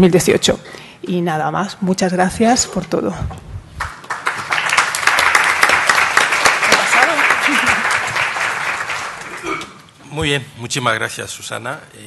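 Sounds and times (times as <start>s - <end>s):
audience applauding: 3.8s - 9.5s.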